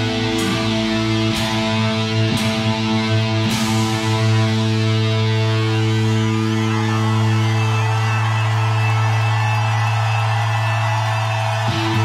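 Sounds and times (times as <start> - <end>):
distorted electric guitars sustained note: 0.0 - 8.4.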